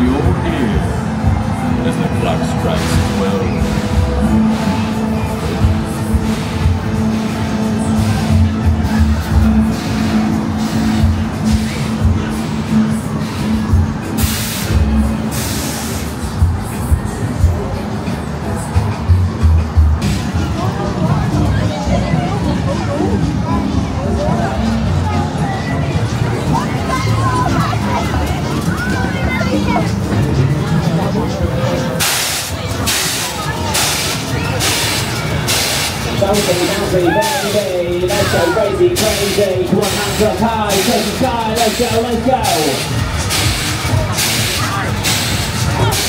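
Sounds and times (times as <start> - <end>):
fairground ride hissing bursts: 0.0 - 46.0
music with bass beat: 2.9 - 18.0, 18.7 - 25.2, 39.0 - 46.0.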